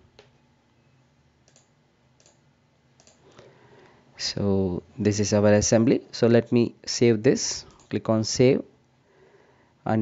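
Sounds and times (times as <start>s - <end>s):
faint computer mouse clicks: 1.4s - 2.4s, 3.0s - 3.5s.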